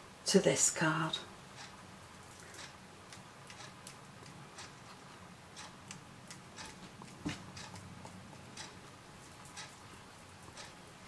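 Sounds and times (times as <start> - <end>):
light irregular ticks: 1.5 - 11.0.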